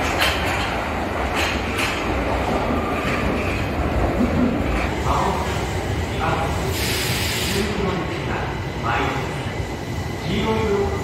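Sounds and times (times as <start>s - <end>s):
low rumble of train: 0.0s - 11.0s
burst of hiss: 6.6s - 7.8s.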